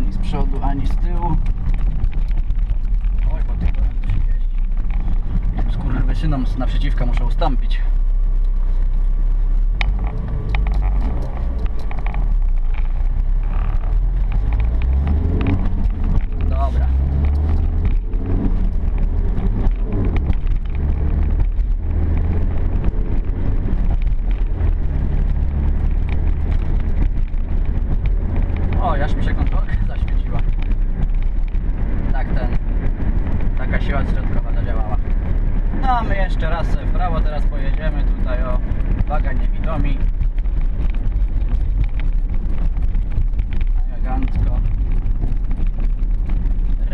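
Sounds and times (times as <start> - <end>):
car engine drone: 0.0 - 46.9
road noise inside car: 0.0 - 46.9.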